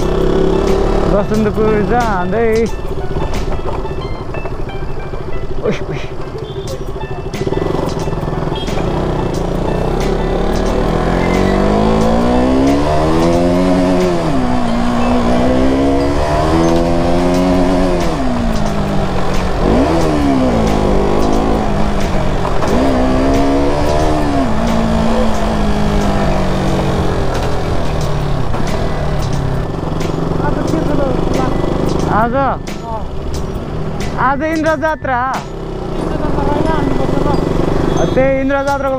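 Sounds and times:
motorcycle engine accelerating: 0.0s - 38.9s.

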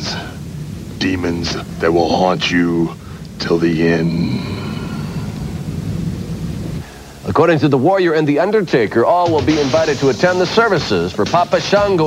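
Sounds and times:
low thunder rumble: 0.0s - 6.8s.

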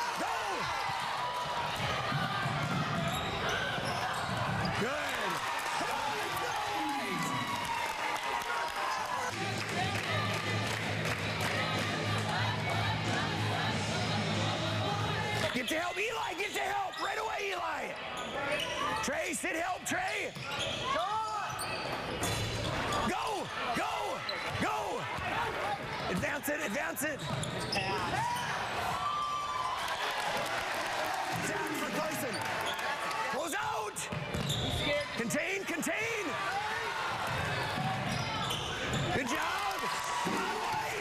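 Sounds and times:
sneakers squeaking on court: 2.2s - 4.9s, 20.3s - 23.1s, 27.2s - 28.6s, 34.1s - 35.2s, 37.3s - 39.2s.

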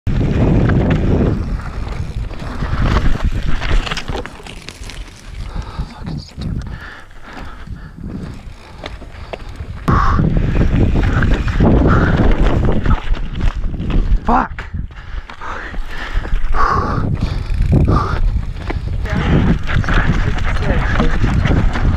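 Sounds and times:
bike rattling over rocks: 0.1s - 14.3s, 15.2s - 21.9s
wind rushing over microphone: 0.1s - 21.9s.

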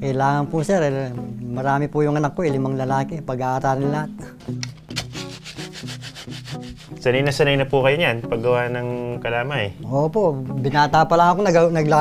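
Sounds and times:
wooden paddle scraping metal pot: 4.4s - 7.1s.

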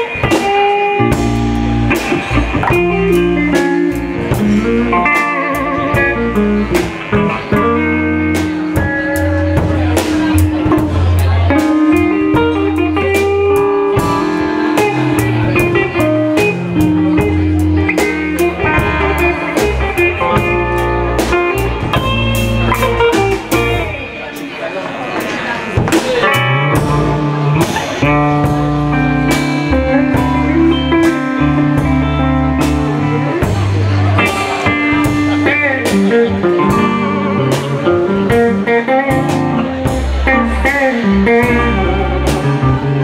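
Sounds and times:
electric bass: 0.0s - 24.2s, 25.8s - 43.0s
drum kit: 0.0s - 43.0s
electric guitar: 0.0s - 43.0s.

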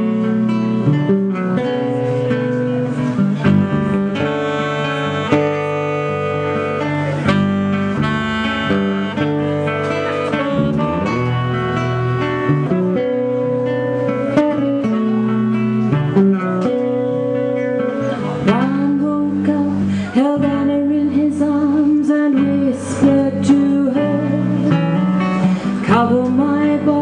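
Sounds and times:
electric bass: 0.0s - 27.0s
strummed acoustic guitar: 0.0s - 27.0s
saxophone melody: 2.2s - 18.6s.

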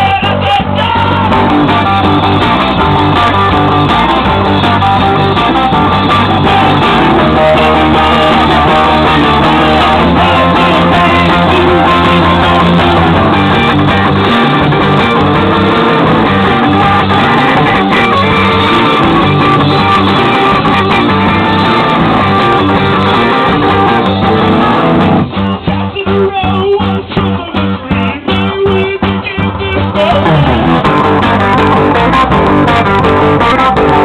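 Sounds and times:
live band guitar music: 0.0s - 34.0s.

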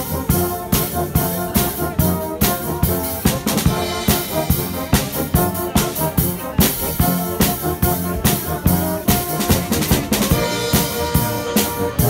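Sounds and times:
brass band with drums: 0.0s - 12.0s.

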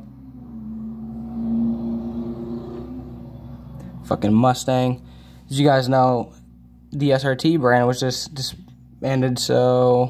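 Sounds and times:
car driving past: 0.0s - 5.2s.

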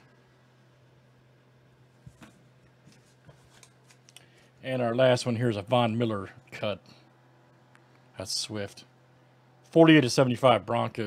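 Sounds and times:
low steady hum: 0.0s - 11.0s
trading cards clicking and rustling: 2.1s - 4.4s.

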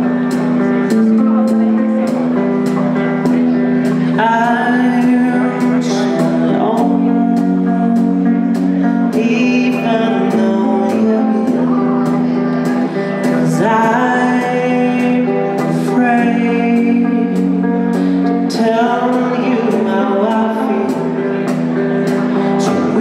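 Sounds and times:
electric guitar: 0.0s - 23.0s
man singing: 0.0s - 23.0s.

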